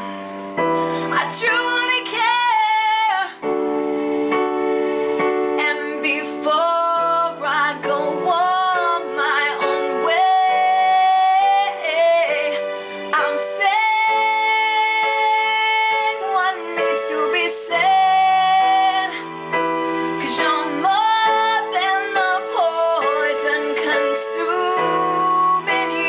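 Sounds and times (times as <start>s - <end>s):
woman singing a slow ballad: 0.0s - 3.6s, 5.5s - 26.0s
electronic keyboard chords: 0.0s - 26.0s.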